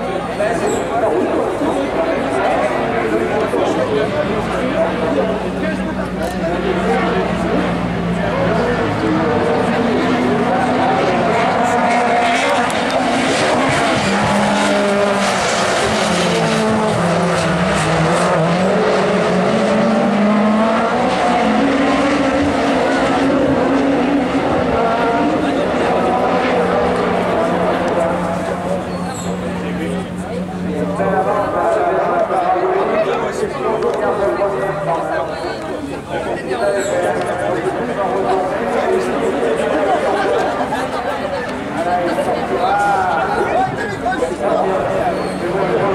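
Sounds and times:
crowd chatter: 0.0 - 45.9
racing car engine: 0.0 - 45.9.

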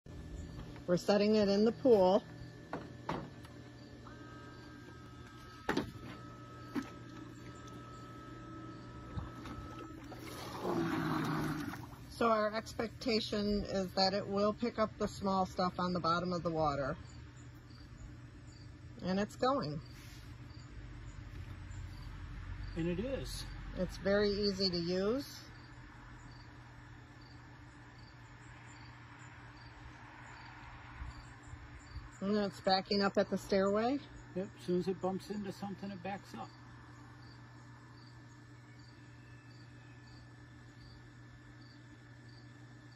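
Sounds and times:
steady low hum: 0.1 - 42.9
insect chirping: 0.2 - 5.7, 16.9 - 42.9
water sloshing and gurgling: 8.9 - 12.4.

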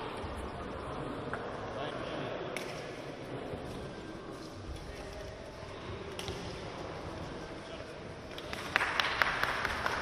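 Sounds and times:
group clapping: 8.3 - 10.0.

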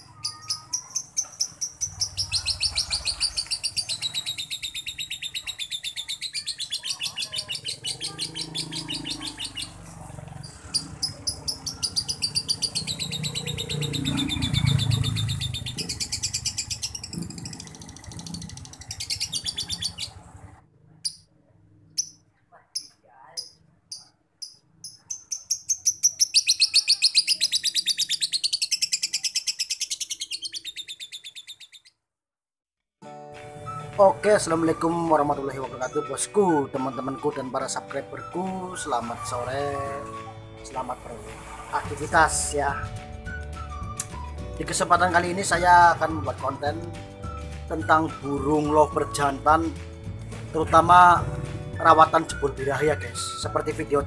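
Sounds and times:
lovebird chattering: 0.0 - 20.2, 21.9 - 32.0
bird chirps: 0.0 - 32.1.

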